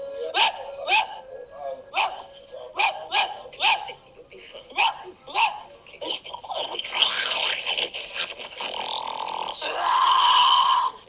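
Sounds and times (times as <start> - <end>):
dog barking: 0.4 - 1.2, 2.0 - 4.0, 4.8 - 5.7.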